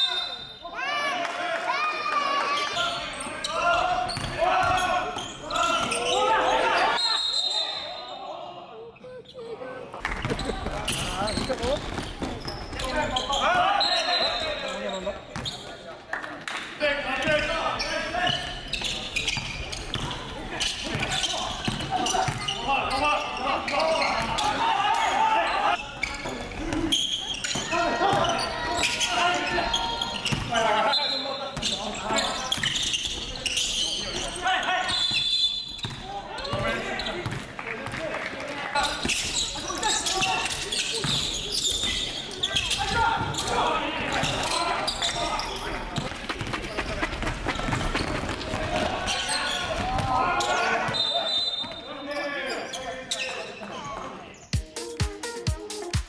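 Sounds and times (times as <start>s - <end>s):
players shouting: 0.0s - 8.8s, 20.0s - 26.1s, 47.7s - 51.3s.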